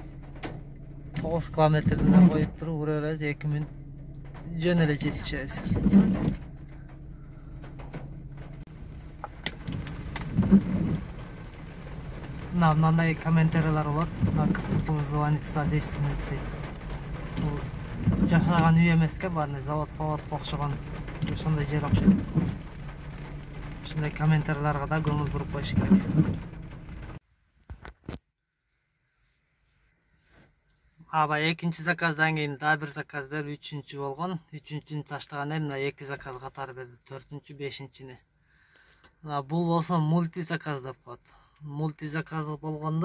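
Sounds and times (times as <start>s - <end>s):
low rumbles: 0.0s - 27.2s
rain falling on a car: 0.0s - 27.2s, 31.3s - 38.0s, 38.6s - 43.0s.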